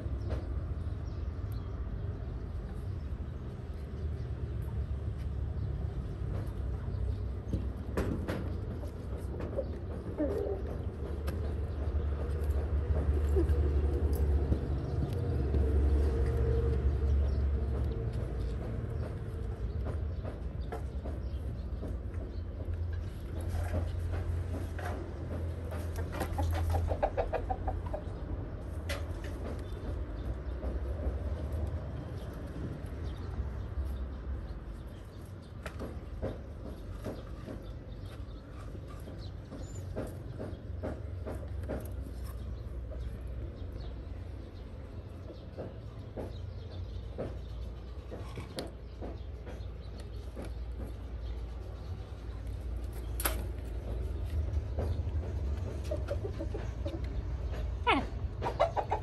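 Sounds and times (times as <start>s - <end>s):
chickens clucking: 8.6s - 32.4s, 53.7s - 59.0s.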